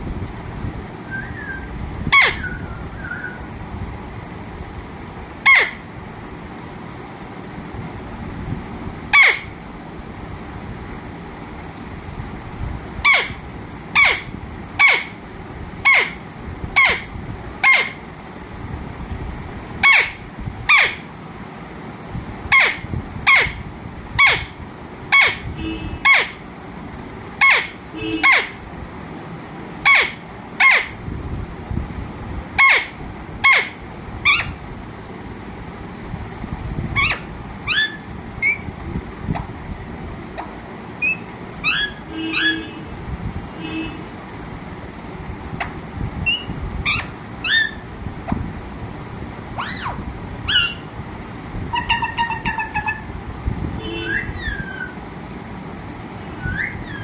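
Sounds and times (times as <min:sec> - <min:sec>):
parakeet screeching: 0:02.1 - 0:03.4, 0:05.4 - 0:05.9, 0:09.1 - 0:09.6, 0:13.0 - 0:15.2, 0:15.8 - 0:18.0, 0:19.8 - 0:21.1, 0:22.5 - 0:26.4, 0:27.4 - 0:28.6, 0:29.8 - 0:31.0, 0:32.6 - 0:34.6, 0:37.0 - 0:38.7, 0:40.4 - 0:42.7, 0:45.6 - 0:47.9, 0:49.5 - 0:50.9, 0:51.7 - 0:53.1, 0:53.8 - 0:55.0, 0:56.3 - 0:57.0.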